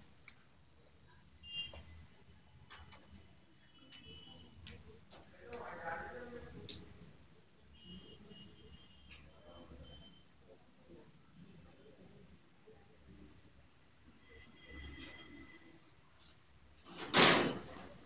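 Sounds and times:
murmur of voice: 4.7s - 7.5s.

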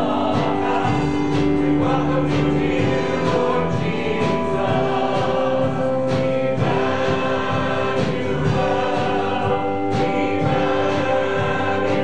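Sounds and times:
choir singing: 0.0s - 12.0s
man singing: 0.0s - 12.0s.

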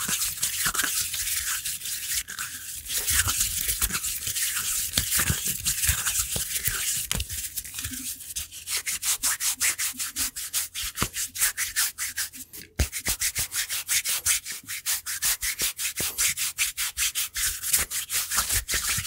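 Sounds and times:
skin rubbing against skin: 0.0s - 19.0s.

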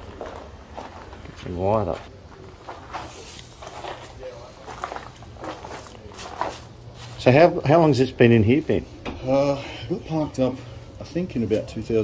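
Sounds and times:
footsteps on dirt floor: 0.0s - 7.8s
faint voices: 0.0s - 12.0s.

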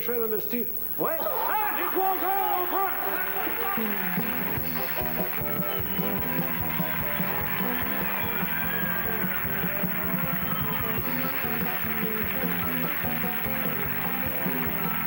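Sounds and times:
audience applauding: 1.3s - 15.0s
upbeat instrumental theme music: 1.5s - 15.0s.

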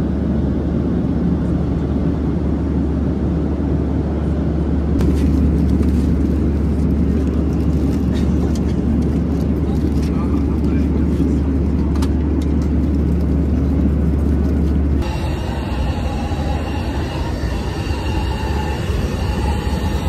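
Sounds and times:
airplane cabin engine and airflow noise: 0.0s - 20.0s.

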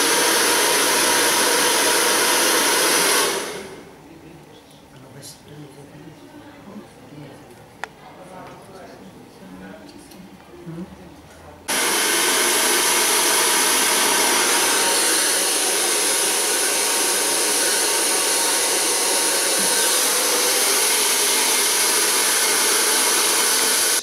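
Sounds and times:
hair dryer blowing: 0.0s - 3.9s, 11.7s - 24.0s.

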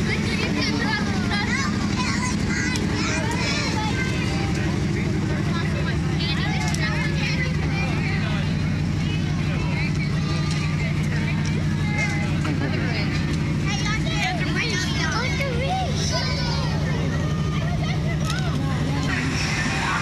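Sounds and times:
crowd chattering: 0.0s - 20.0s
vehicle engine running: 0.0s - 20.0s.

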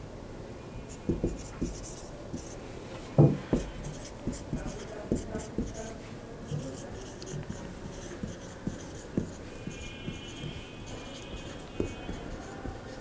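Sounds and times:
marker writing on whiteboard: 0.9s - 13.0s.

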